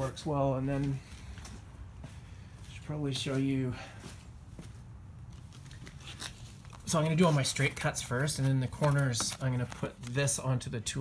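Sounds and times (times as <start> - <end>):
light clicks of blister packs: 5.3 - 10.5.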